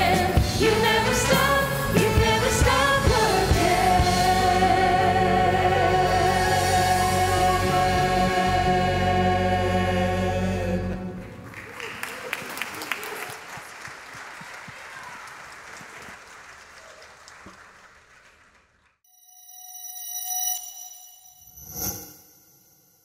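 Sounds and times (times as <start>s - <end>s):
choir and orchestra chord: 0.0s - 11.3s
congregation applause: 11.2s - 19.0s
chiming sound effect: 19.1s - 23.0s.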